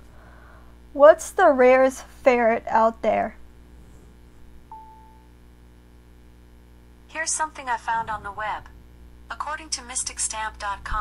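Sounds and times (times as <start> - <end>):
faint low hum: 0.0 - 11.0
short electronic beep: 4.7 - 5.3.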